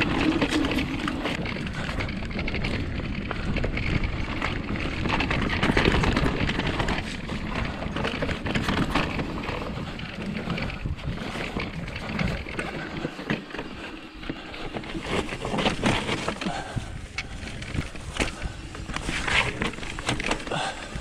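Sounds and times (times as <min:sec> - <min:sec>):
bike chain and frame rattling: 0:00.0 - 0:21.0
bike tyres rolling on dirt: 0:00.0 - 0:21.0.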